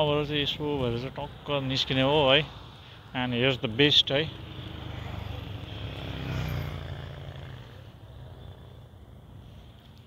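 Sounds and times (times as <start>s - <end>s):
motorcycle passing: 3.6s - 9.8s.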